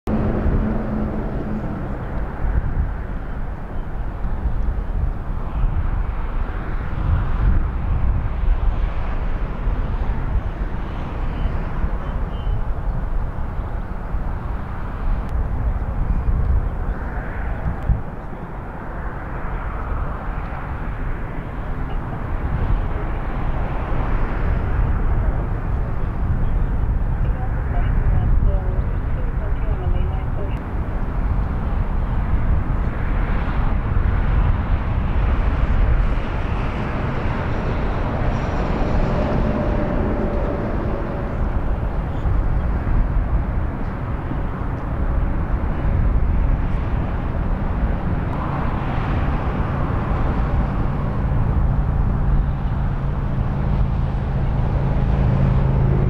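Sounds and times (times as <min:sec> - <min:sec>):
freeway traffic rumble: 0:00.0 - 0:56.0.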